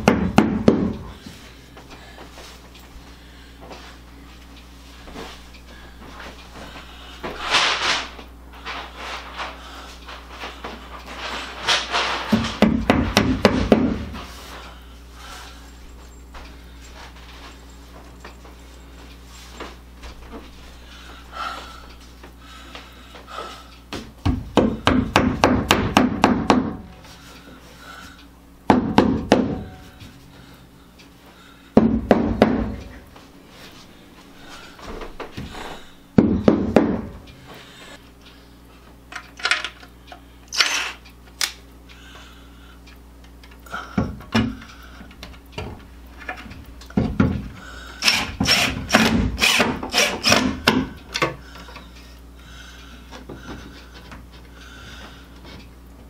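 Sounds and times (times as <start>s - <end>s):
hammer tapping wall anchors: 0.0s - 1.0s, 12.3s - 14.0s, 23.9s - 26.8s, 28.7s - 29.7s, 31.8s - 32.9s, 36.2s - 37.1s.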